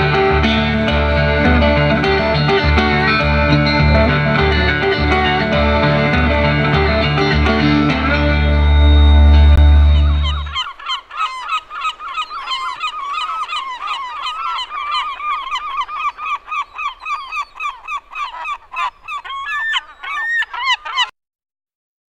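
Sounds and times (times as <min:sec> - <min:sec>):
flock of birds calling: 0:09.8 - 0:21.1.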